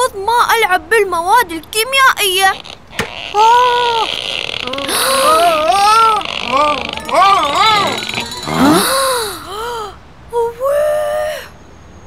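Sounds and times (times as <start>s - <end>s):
high-pitched wordless moans: 3.3s - 11.3s.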